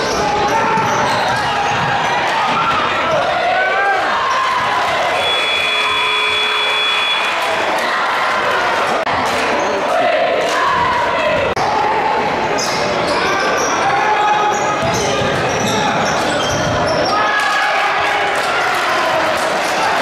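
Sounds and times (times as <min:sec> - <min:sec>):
crowd voices and shouts: 0:00.0 - 0:20.0.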